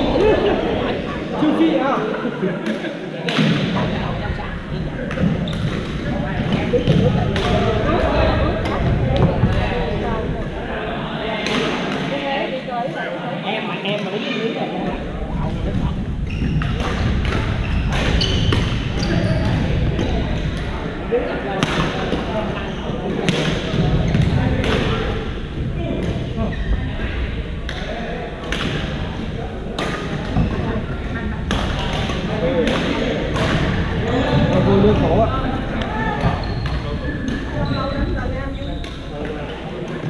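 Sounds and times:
chatter of players: 0:00.0 - 0:40.0
shoe squeaks on court floor: 0:16.2 - 0:16.8, 0:17.5 - 0:19.7, 0:36.2 - 0:39.4
rackets smacking shuttlecocks: 0:16.6 - 0:20.8, 0:31.4 - 0:34.0.

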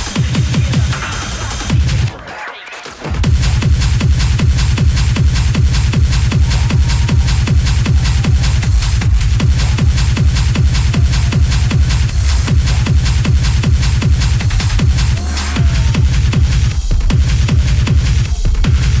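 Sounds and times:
heavy bass: 0:00.0 - 0:02.3, 0:03.0 - 0:19.0
fast kick-drum beat: 0:00.0 - 0:19.0
hard techno music: 0:00.0 - 0:19.0.

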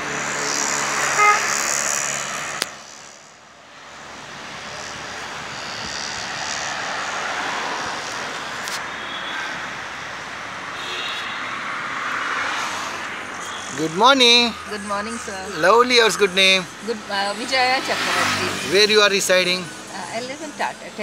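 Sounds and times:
road and traffic noise: 0:00.0 - 0:21.0
tyres and wind noise: 0:00.0 - 0:21.0.

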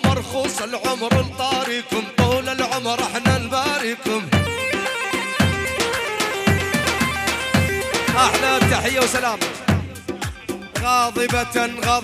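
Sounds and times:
repeating drum beat: 0:00.0 - 0:12.0
electronic keyboard melody: 0:04.4 - 0:11.4.

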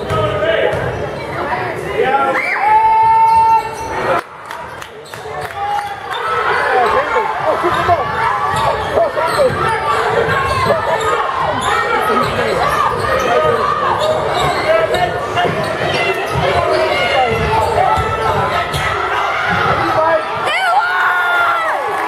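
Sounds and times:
echoing crowd chatter: 0:00.0 - 0:22.0.

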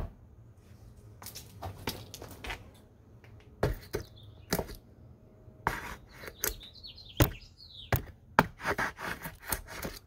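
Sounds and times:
screwdriver scraping wood: 0:05.6 - 0:06.7, 0:08.0 - 0:10.0.

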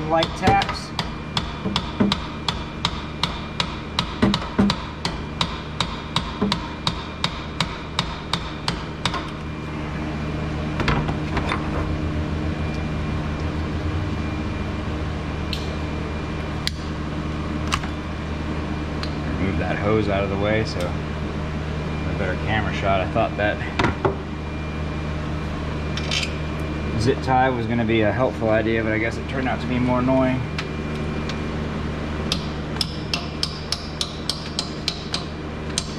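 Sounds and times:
hammer tapping metal: 0:00.2 - 0:09.4, 0:32.3 - 0:35.9.

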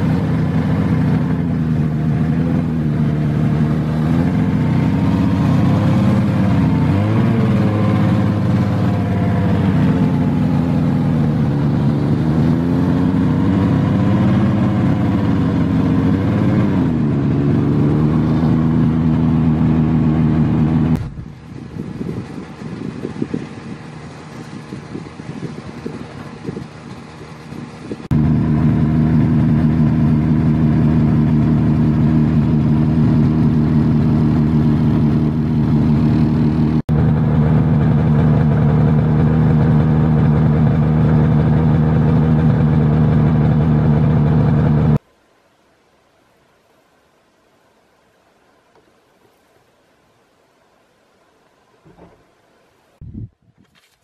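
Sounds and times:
snowmobile engine running: 0:00.0 - 0:45.0.

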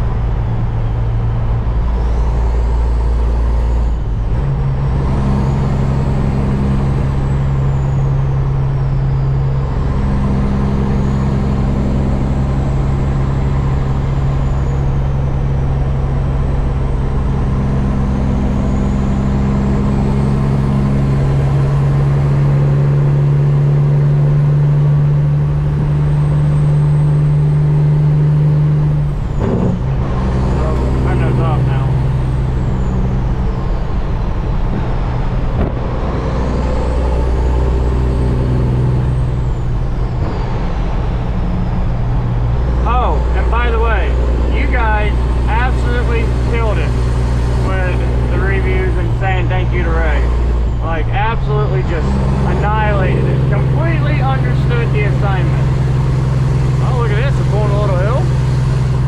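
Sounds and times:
diesel truck engine pulling: 0:00.0 - 0:59.0.

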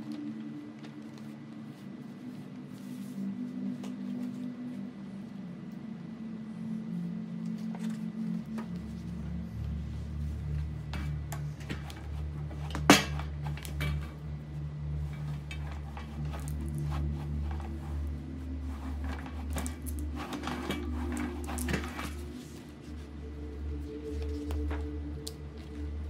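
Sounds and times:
paper and cardboard handled: 0:00.0 - 0:04.8, 0:07.4 - 0:23.1
soft background music: 0:00.0 - 0:26.0.

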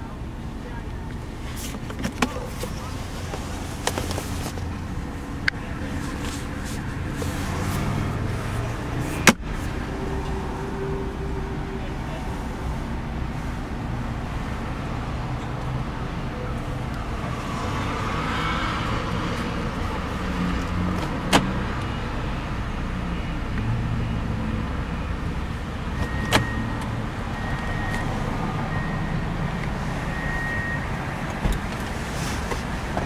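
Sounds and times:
car cabin low rumble: 0:00.0 - 0:17.5.

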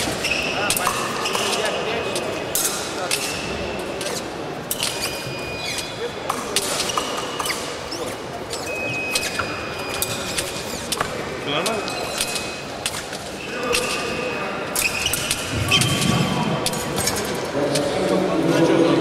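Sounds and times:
shoes squeaking on floor: 0:00.0 - 0:02.3, 0:03.3 - 0:17.9
voices in a hall: 0:00.0 - 0:19.0.

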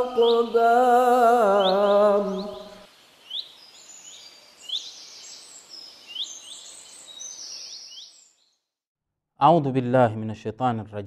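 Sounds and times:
birds chirping: 0:00.0 - 0:08.7
faint hiss: 0:00.3 - 0:06.0.

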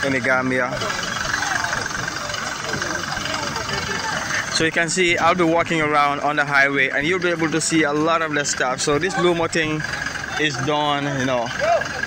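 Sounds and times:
murmur of voices: 0:00.0 - 0:12.0
vehicle engine running: 0:00.0 - 0:12.0.

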